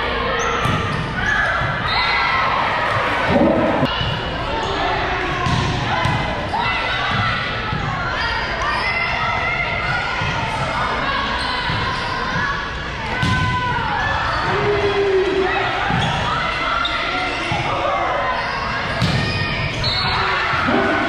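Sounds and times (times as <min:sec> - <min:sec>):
people shouting in a hall: 0:00.0 - 0:21.0.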